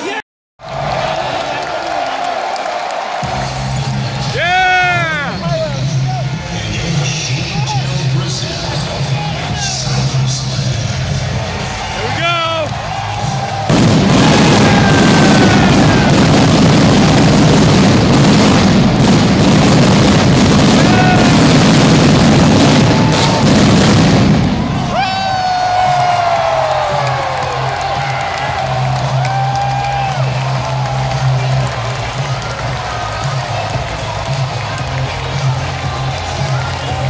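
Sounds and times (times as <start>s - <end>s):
music: 3.2s - 18.2s, 24.4s - 37.0s
crowd shouting: 4.1s - 5.7s, 11.5s - 34.8s
pyrotechnics roaring: 13.6s - 25.1s.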